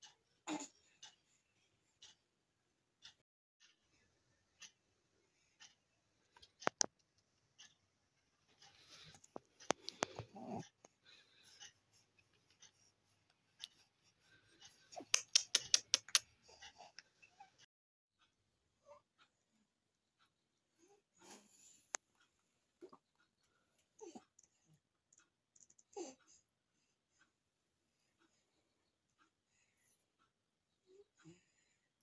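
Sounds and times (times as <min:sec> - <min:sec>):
small clicks: 0:15.0 - 0:17.1, 0:24.4 - 0:26.0.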